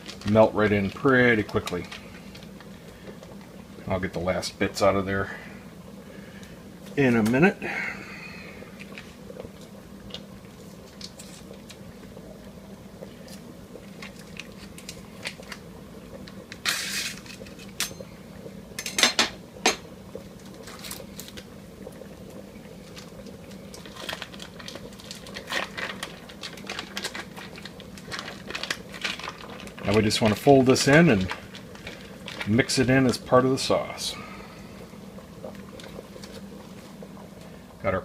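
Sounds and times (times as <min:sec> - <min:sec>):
foil wrapper crinkling: 0:00.0 - 0:03.4, 0:10.1 - 0:11.8, 0:13.2 - 0:17.8, 0:20.4 - 0:21.5, 0:22.8 - 0:33.4
pasta water boiling: 0:00.0 - 0:38.0
steady low hum: 0:00.0 - 0:38.0.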